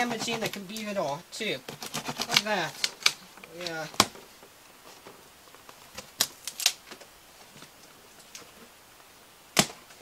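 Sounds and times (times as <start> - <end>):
cardboard crackling and snapping: 1.6 - 8.6, 9.5 - 10.0.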